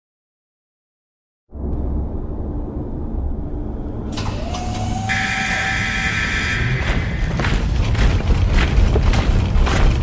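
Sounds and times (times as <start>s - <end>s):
industrial machinery rumble: 1.9s - 10.0s.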